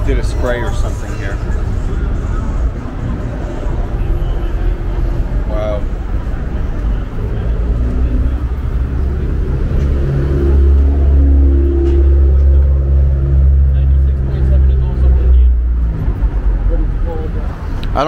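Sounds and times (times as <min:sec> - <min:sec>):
vehicle engine rumbling: 0:00.0 - 0:18.0.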